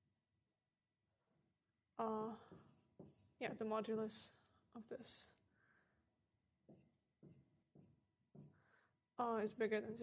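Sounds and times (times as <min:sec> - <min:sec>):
marker writing on whiteboard: 0:02.2 - 0:04.0, 0:06.5 - 0:08.7.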